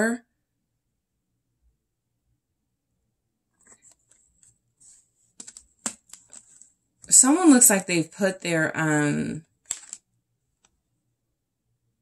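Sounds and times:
fingernails tapping cards: 0:05.4 - 0:06.6, 0:09.6 - 0:10.0.

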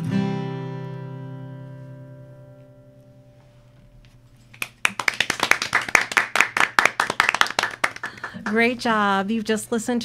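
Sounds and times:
acoustic guitar chord ringing: 0:00.0 - 0:03.7
hand clapping: 0:04.5 - 0:08.6.

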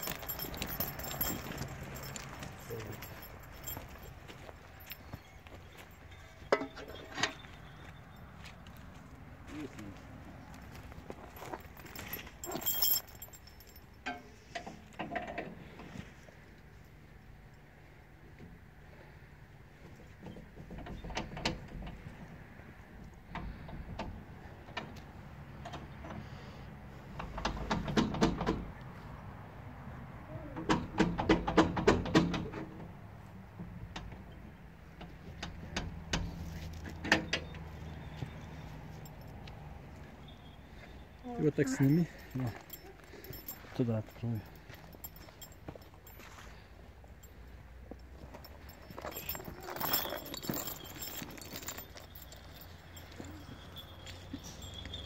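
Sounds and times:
metal chain rattling: 0:00.0 - 0:08.2, 0:10.6 - 0:15.3, 0:38.9 - 0:39.5, 0:41.3 - 0:55.0.

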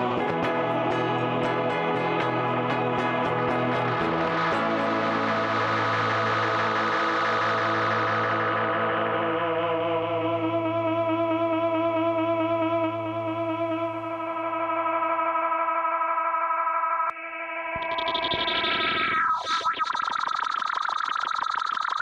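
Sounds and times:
electric guitar chords with echo: 0:00.0 - 0:16.4.

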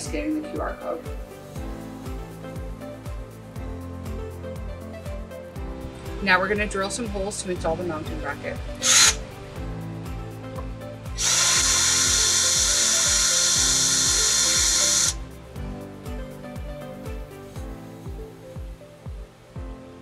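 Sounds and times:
background music with beat: 0:00.0 - 0:20.0
cordless drill boring into brick: 0:08.8 - 0:09.2, 0:11.2 - 0:15.2.

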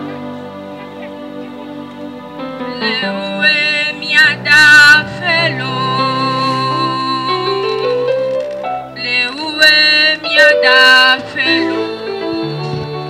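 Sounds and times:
instrumental backing with bass: 0:00.0 - 0:13.0
girl singing into microphone: 0:02.7 - 0:07.9.

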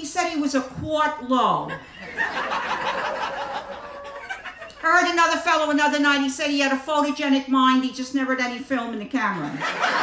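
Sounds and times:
audience laughing: 0:01.7 - 0:04.8, 0:09.4 - 0:10.0.

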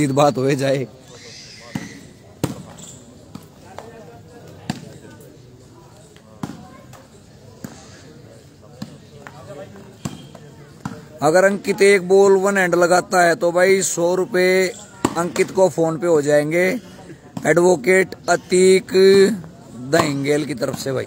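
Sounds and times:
low crowd murmur: 0:00.0 - 0:21.0.

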